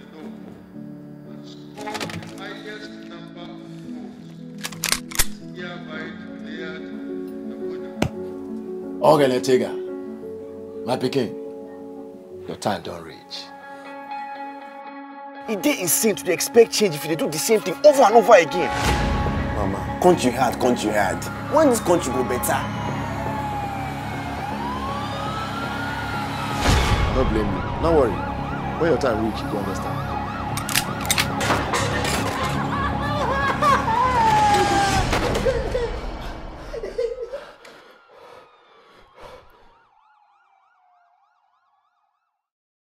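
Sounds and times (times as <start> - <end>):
siren wailing: 20.9 - 35.2, 35.9 - 42.4
sliding lower siren tone: 21.4 - 31.1, 37.9 - 42.4.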